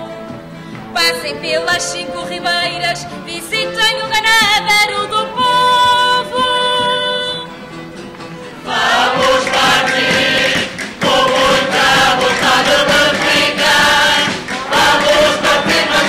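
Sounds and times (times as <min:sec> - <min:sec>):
guitars: 0:00.0 - 0:16.0
mixed chorus singing: 0:08.6 - 0:16.0.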